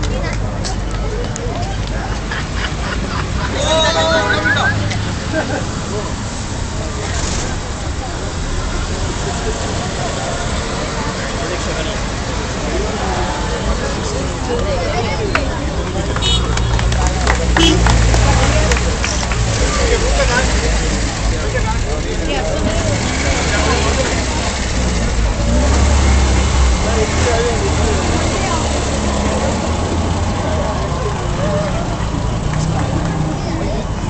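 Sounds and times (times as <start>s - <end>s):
car engines rumbling past: 0.0s - 34.0s
crowd chatter: 0.0s - 34.0s.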